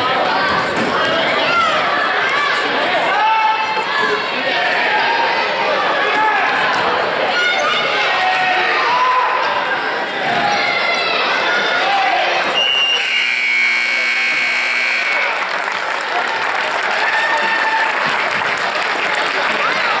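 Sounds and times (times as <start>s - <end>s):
crowd chatter: 0.0s - 20.0s
scoreboard buzzer: 12.5s - 15.4s
crowd clapping: 13.8s - 20.0s.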